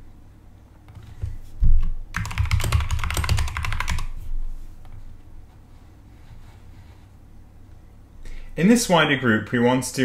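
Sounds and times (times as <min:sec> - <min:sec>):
keyboard typing: 0:02.1 - 0:04.2.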